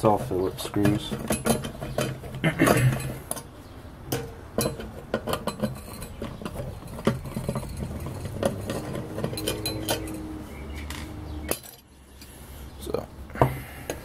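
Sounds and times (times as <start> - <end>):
small metallic clicks and clinks: 4.1 - 12.3.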